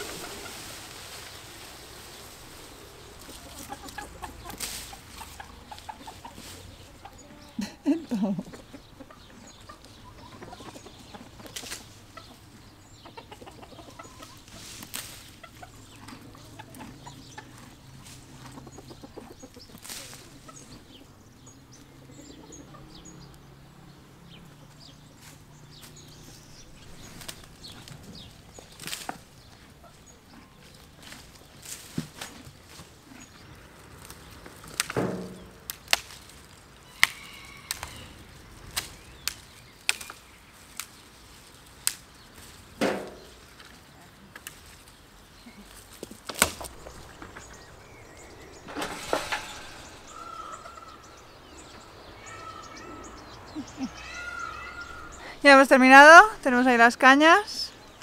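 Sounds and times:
horses munching leaves: 0.0s - 21.1s, 24.8s - 58.0s
hens clucking: 0.0s - 35.6s, 41.4s - 58.0s
sharp cracks and snaps: 28.7s - 29.3s, 34.0s - 37.9s, 38.7s - 41.0s, 41.8s - 42.2s, 45.9s - 47.5s.

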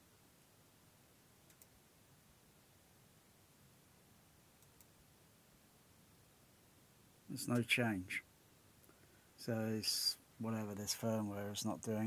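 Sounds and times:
computer mouse clicks: 1.4s - 1.8s, 4.6s - 5.0s.

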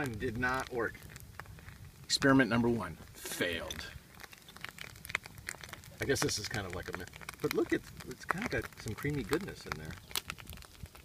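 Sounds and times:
campfire crackling and popping: 0.0s - 11.0s.

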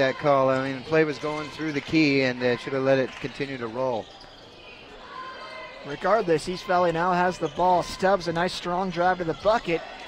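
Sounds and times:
court noise: 0.0s - 10.0s.

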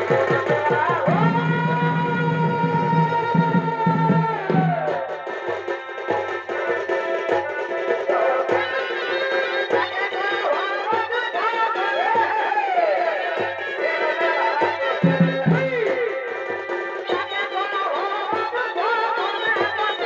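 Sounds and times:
regular drum beats: 0.0s - 20.0s.

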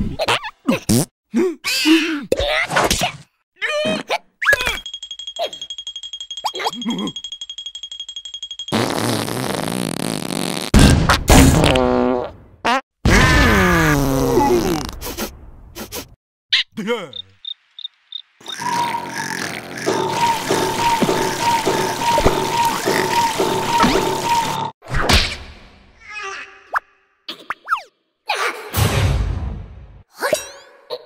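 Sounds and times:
falling comic noises: 13.0s - 15.0s.

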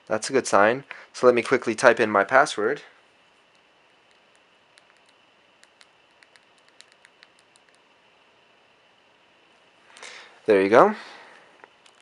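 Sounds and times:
keyboard keys clicking: 4.8s - 7.8s.

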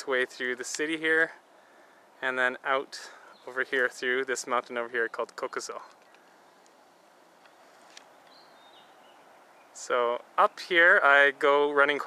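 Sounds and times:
faint outdoor hiss: 0.0s - 12.0s
distant bird chirp: 1.2s - 12.0s.

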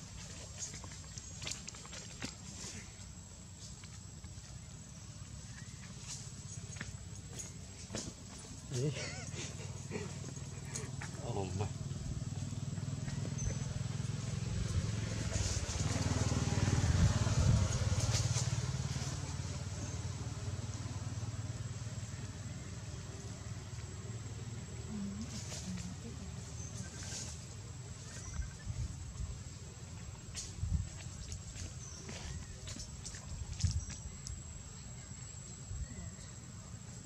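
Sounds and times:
motor vehicle passing: 5.5s - 33.9s
person laughing: 8.7s - 11.0s.

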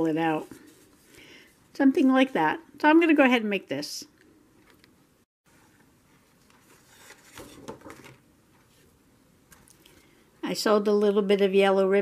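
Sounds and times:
paper rustling and crackling: 5.6s - 8.8s.

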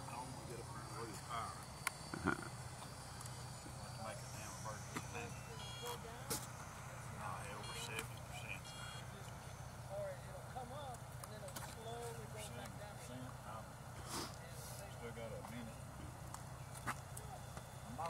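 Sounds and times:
distant people talking: 0.0s - 18.0s
steady low hum: 0.0s - 18.0s.

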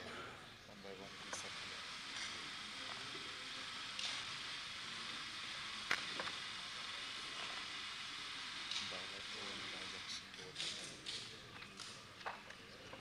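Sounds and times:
film soundtrack hiss: 0.0s - 13.0s.

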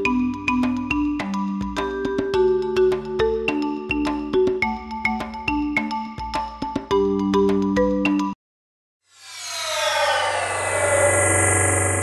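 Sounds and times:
electronic whoosh: 9.1s - 12.0s
tones sliding down in pitch: 9.2s - 12.0s.

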